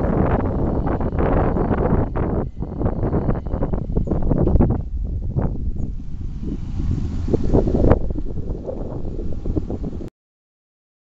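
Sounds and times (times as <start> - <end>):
wind buffeting microphone: 0.0 - 10.1.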